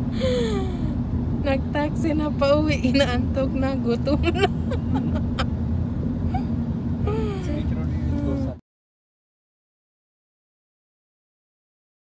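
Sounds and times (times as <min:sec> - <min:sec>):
car cabin rumble: 0:00.0 - 0:08.6
steady hum: 0:00.0 - 0:08.6
person laughing: 0:04.2 - 0:05.5.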